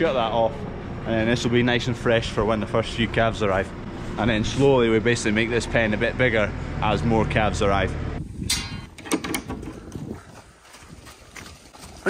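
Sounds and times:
cow hooves on concrete: 9.4s - 12.0s.

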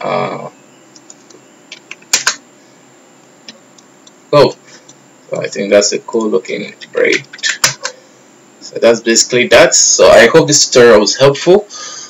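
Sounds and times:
computer mouse clicks: 0.9s - 2.4s.

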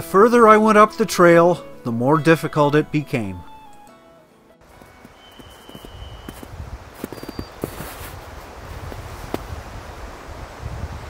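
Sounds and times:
footsteps crackling in snow: 4.7s - 9.6s
wind rumbling on microphone: 5.4s - 11.0s.

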